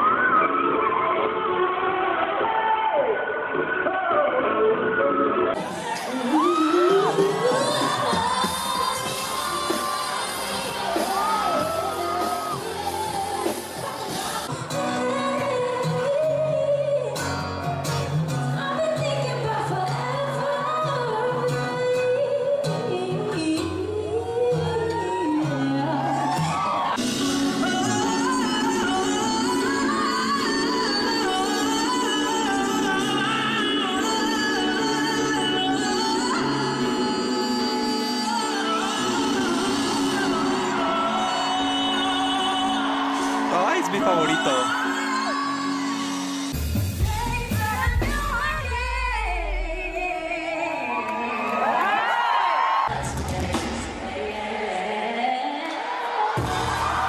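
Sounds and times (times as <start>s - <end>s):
guitar and keyboard accompaniment: 0.0s - 48.6s.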